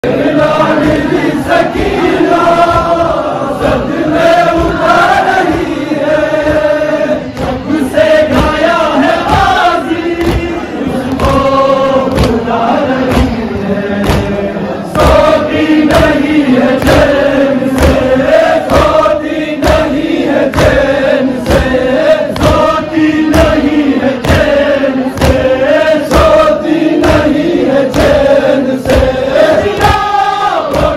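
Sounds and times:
men chanting in unison: 0.0 - 30.9
chest-beating slaps: 8.3 - 30.9.

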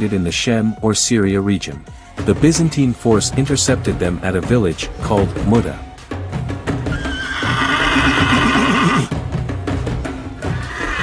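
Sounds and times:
horse whinnying: 6.8 - 9.1, 10.4 - 11.0.

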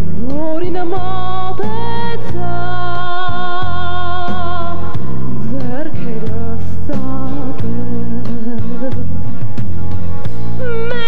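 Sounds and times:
live pop song with steady beat: 0.0 - 11.0
woman singing: 0.2 - 9.2, 10.6 - 11.0.

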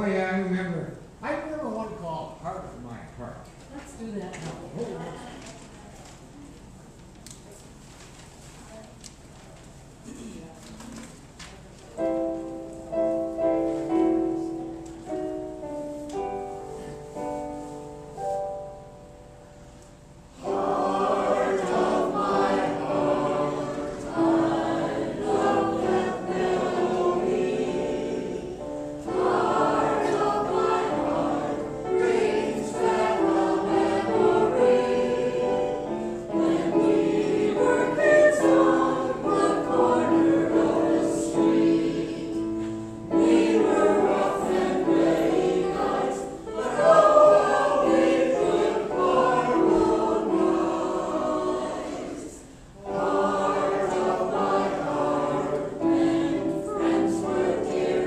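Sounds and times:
piano accompaniment: 11.9 - 58.0
mixed choir singing: 20.3 - 58.0.

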